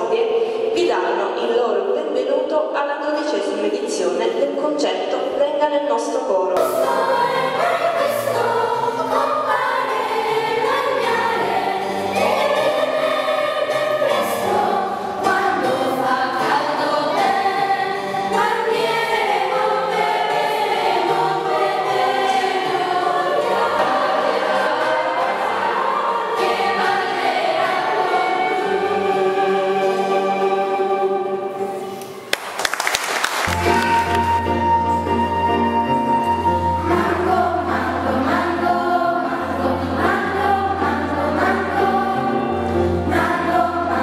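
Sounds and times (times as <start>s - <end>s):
children's choir singing: 6.6s - 32.2s, 33.5s - 44.0s.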